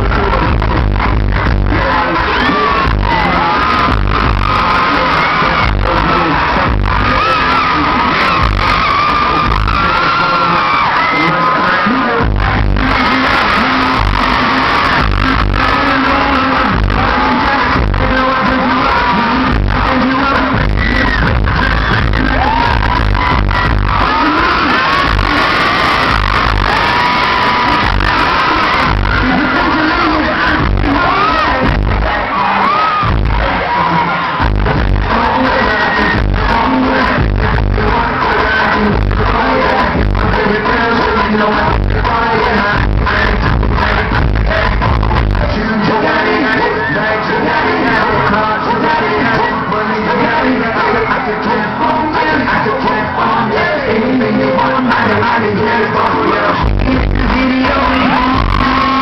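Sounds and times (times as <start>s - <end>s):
concert music with bass beat: 0.0s - 59.0s
crowd noise: 0.0s - 59.0s
person singing: 0.0s - 59.0s.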